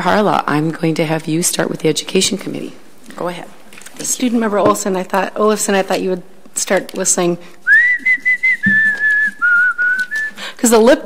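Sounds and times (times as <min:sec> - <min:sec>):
woman whistling a tune: 0:07.7 - 0:10.5.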